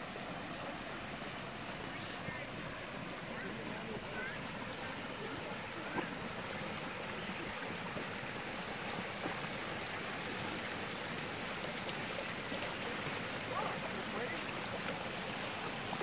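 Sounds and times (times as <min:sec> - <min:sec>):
fountain water splashing: 0:00.0 - 0:16.0.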